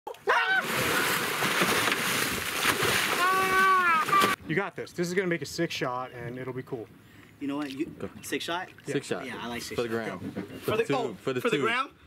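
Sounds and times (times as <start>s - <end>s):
heavy water splashing: 0.4s - 4.4s.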